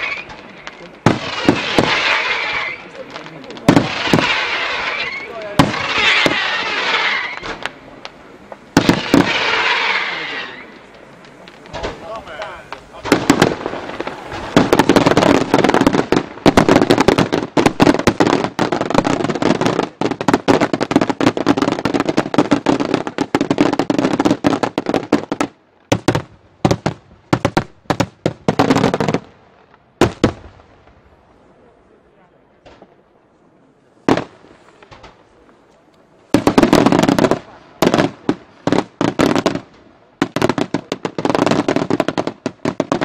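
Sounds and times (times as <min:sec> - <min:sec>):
fireworks cracking bangs: 0:00.0 - 0:31.3, 0:32.6 - 0:33.0, 0:34.0 - 0:43.0.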